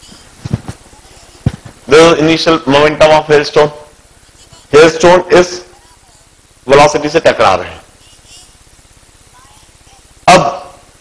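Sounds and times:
footsteps thumping on floor: 0.0s - 1.8s.

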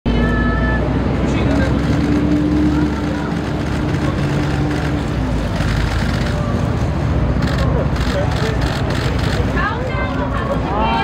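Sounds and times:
crowd talking: 0.1s - 11.0s
low rumble of city traffic: 0.1s - 11.0s.

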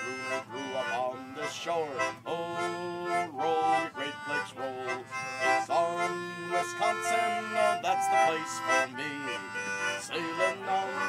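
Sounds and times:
concertina playing folk tune: 0.0s - 11.0s.

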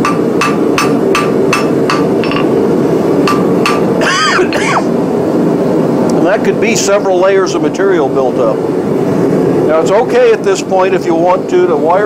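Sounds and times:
hammer striking metal on anvil: 0.0s - 2.6s, 3.2s - 4.1s
steady background roar: 0.0s - 12.0s.

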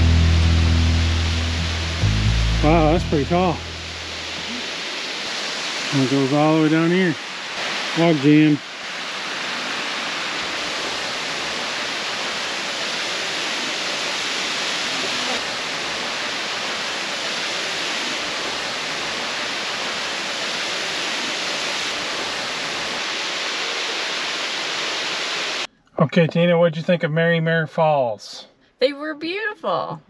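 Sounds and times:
waterfall rushing: 0.0s - 25.7s.

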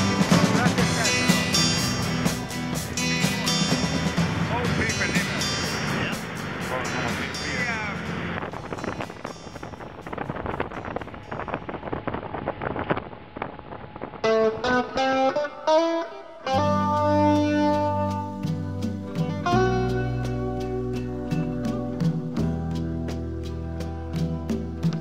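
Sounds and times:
voices: 0.0s - 9.7s
music: 0.0s - 13.0s, 14.2s - 25.0s
boat motor wind and spray: 0.0s - 14.9s
plucked guitar tune: 0.0s - 25.0s.

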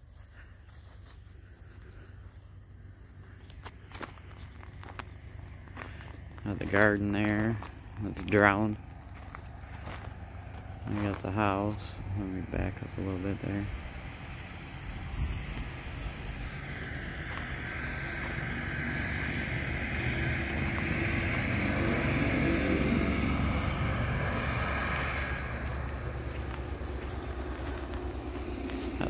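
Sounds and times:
tractor passing by: 2.1s - 29.0s.

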